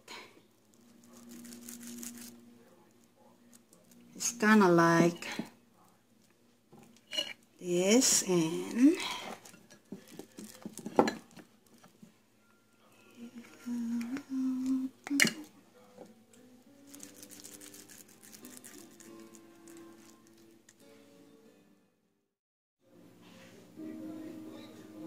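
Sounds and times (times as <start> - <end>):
soft music with held notes: 8.1 - 22.2, 22.8 - 25.0.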